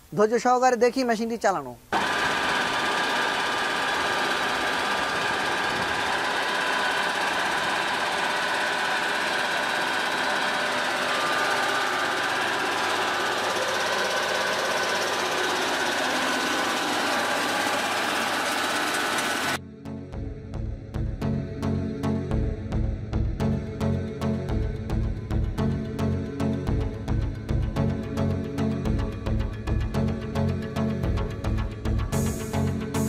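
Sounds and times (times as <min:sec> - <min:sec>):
rice mill machine running: 0:01.9 - 0:19.6, 0:31.0 - 0:33.0.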